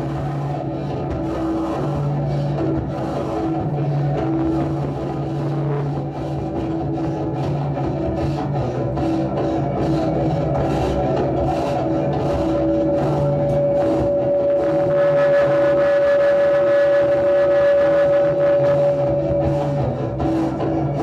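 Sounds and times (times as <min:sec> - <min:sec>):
high sustained note: 0:00.0 - 0:21.0
noisy drone music: 0:00.0 - 0:21.0.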